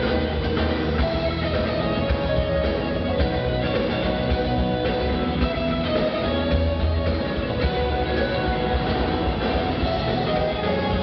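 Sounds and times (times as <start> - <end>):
electric guitars playing: 0.0 - 11.0
keyboard: 0.0 - 11.0
low bass: 0.0 - 11.0.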